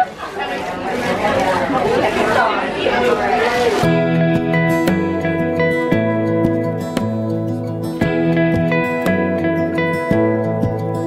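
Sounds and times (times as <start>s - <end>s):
people chattering: 0.0s - 6.9s
guitar music: 3.8s - 11.0s.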